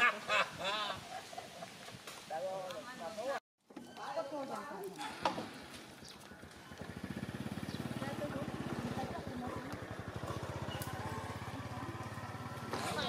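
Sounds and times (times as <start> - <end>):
small engine idling: 5.1 - 13.0.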